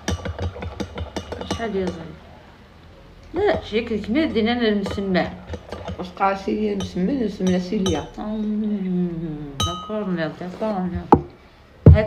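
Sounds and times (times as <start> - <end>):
teaspoon clinking against mug: 0.0 - 2.0, 6.7 - 8.2
woman's voice: 1.4 - 2.2, 3.3 - 5.4, 6.0 - 11.2.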